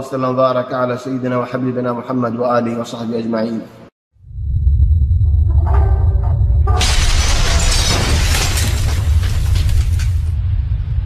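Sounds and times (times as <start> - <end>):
deep bass rumble: 4.2 - 11.0
crash of shattering debris: 6.8 - 10.6.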